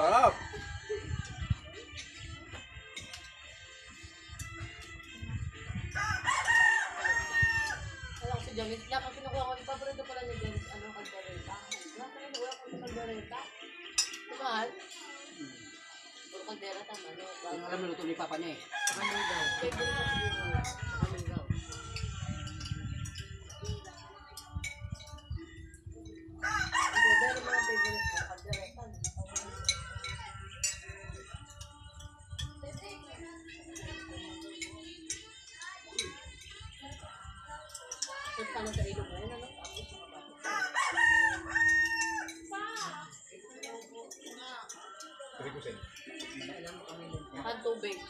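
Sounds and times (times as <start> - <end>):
spoons clinking on plates: 1.8 - 5.3, 10.8 - 15.2, 18.0 - 20.9, 21.6 - 48.0
rooster crowing: 5.9 - 8.0, 18.7 - 21.0, 26.4 - 28.4, 40.4 - 42.4.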